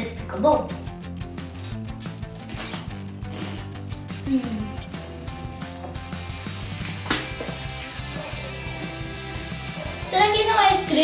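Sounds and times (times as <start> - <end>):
background music: 0.0 - 11.0
crisp chip being chewed: 2.3 - 3.8.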